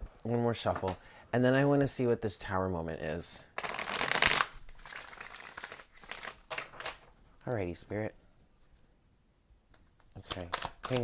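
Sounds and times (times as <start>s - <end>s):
cards being shuffled: 3.6s - 7.1s, 9.7s - 11.0s.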